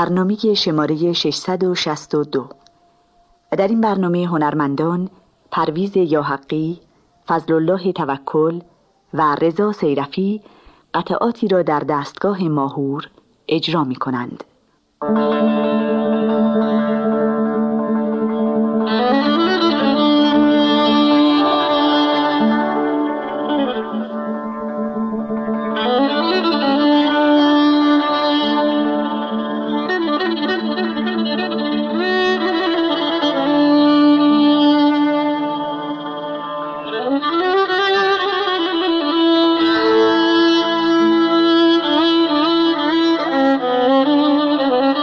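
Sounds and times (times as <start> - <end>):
violin improvisation with glides: 15.0 - 45.0.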